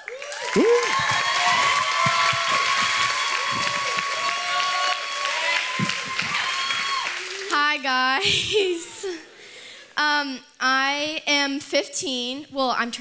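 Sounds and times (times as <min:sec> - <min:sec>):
audience cheering and whooping: 0:00.0 - 0:07.6
audience applauding: 0:00.0 - 0:07.8.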